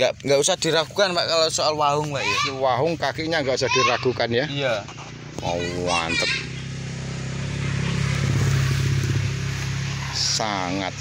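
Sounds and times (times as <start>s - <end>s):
vehicle engine running: 4.4s - 11.0s.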